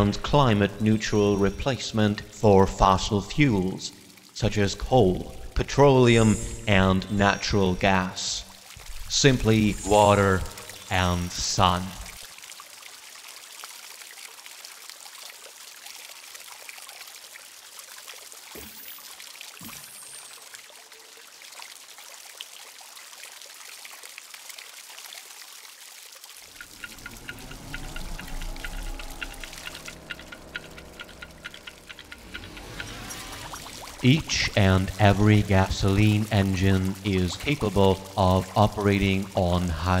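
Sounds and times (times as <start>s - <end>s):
water fizzing and bubbling: 0.0s - 40.0s
deeper fuller sound: 4.9s - 12.1s, 26.5s - 40.0s.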